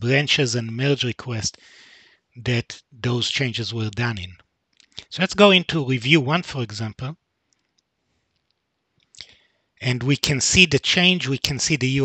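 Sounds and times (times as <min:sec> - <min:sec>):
faint clicks: 0:04.7 - 0:05.1, 0:07.5 - 0:09.4.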